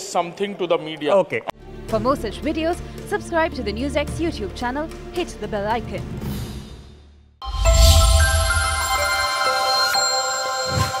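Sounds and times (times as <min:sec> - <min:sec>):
bright chime-like tones: 0:07.4 - 0:11.0
electronic news music sting: 0:07.4 - 0:11.0.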